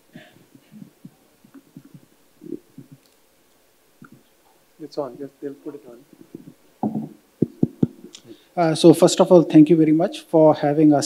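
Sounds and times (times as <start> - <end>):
microphone handling knocks: 0.2 - 3.0, 6.1 - 8.1.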